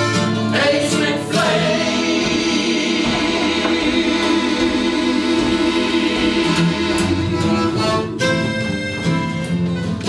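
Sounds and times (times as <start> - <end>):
acoustic guitars strumming: 0.0 - 10.0
button accordion: 0.0 - 10.0.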